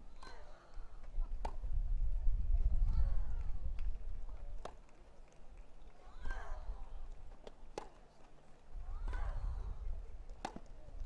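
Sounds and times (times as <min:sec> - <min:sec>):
racket striking tennis ball: 0:10.4 - 0:10.7.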